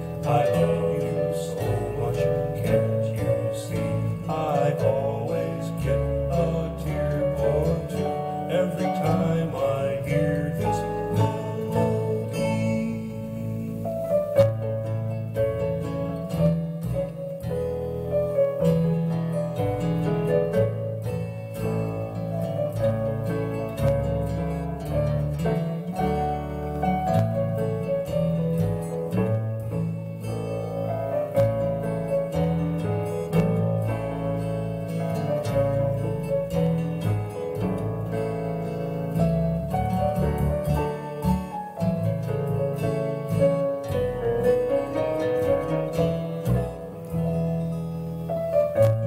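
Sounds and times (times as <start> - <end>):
piano lullaby: 0.0 - 49.0.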